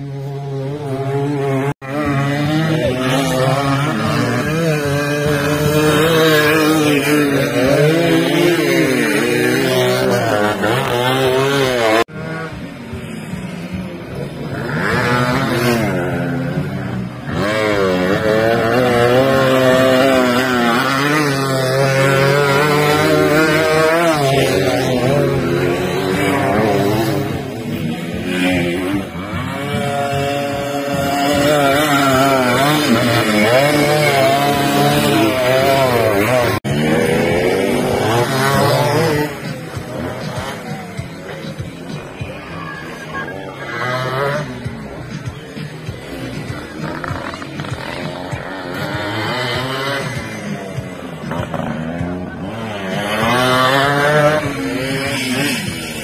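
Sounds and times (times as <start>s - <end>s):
dirt bike engines revving: 0.0s - 56.0s.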